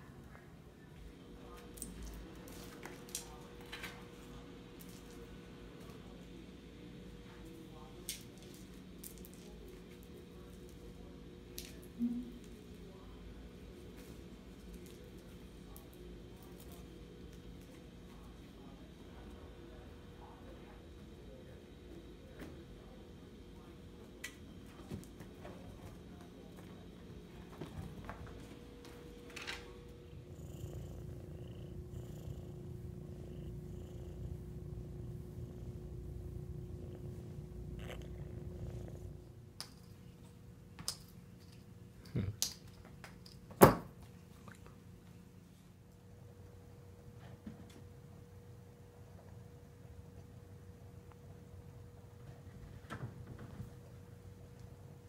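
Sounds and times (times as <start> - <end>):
low room hum: 0.0 - 55.0
kitten purring: 29.6 - 39.4.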